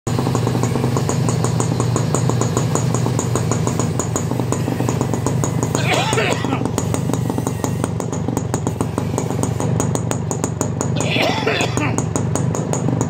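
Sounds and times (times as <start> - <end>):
motorcycle engine idling: 0.1 - 13.0.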